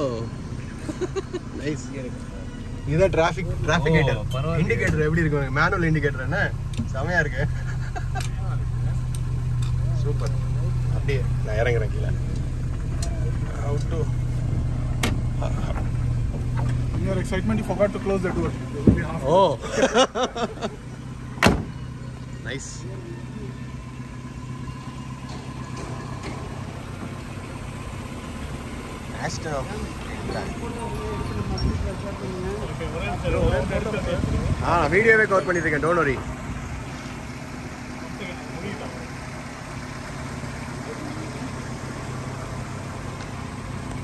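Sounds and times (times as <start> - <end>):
low engine hum: 0.0 - 44.0
car door slamming shut: 21.4 - 21.9.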